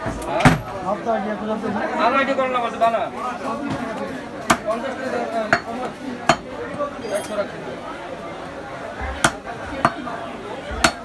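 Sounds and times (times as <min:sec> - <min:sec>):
cleaver chopping on wooden block: 0:09.2 - 0:10.0.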